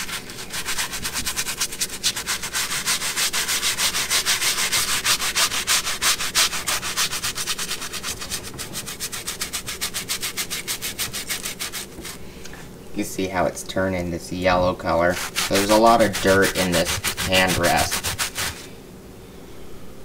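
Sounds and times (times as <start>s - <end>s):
brush scrubbing upholstery: 0.0s - 12.2s, 14.4s - 18.7s.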